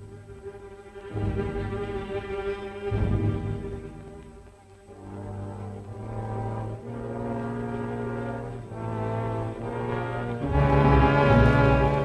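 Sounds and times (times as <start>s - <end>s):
orchestral brass chords: 1.1s - 12.0s.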